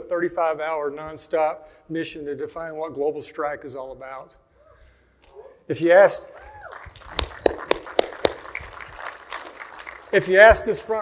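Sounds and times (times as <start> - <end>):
room noise in a large hall: 0.0 - 11.0.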